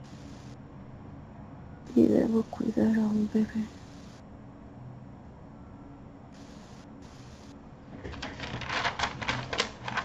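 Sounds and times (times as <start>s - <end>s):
computer keyboard typing: 8.1s - 10.0s.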